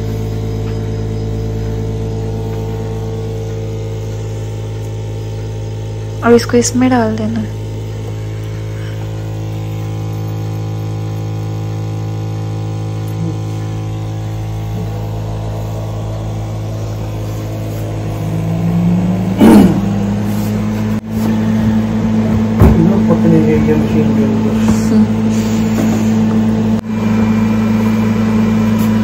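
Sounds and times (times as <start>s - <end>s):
electrical hum of machines: 0.0s - 29.0s
furnace motor tone: 0.0s - 29.0s.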